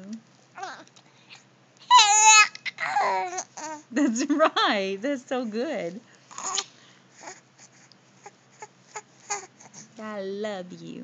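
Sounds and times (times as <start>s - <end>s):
baby squealing and cooing: 0.6s - 0.9s, 1.9s - 3.9s, 6.3s - 7.4s, 8.2s - 9.8s.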